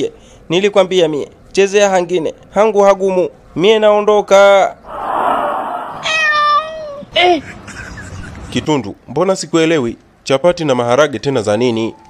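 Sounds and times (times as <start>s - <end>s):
rushing burst of noise: 4.8s - 6.4s
cat meowing: 5.8s - 7.1s.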